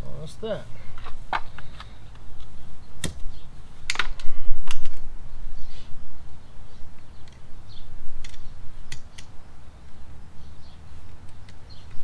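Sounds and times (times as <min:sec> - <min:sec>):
sharp clicks: 0:08.2 - 0:09.4.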